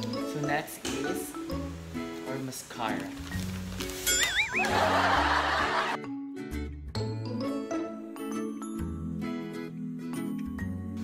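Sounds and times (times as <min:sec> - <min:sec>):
light background music: 0:00.0 - 0:11.0
wobbling whistle-like tone: 0:04.1 - 0:04.8
canned laughter: 0:04.6 - 0:06.0.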